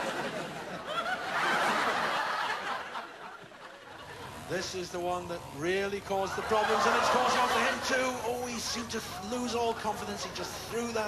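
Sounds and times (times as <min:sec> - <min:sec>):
people laughing: 0:00.0 - 0:04.8, 0:06.0 - 0:11.0.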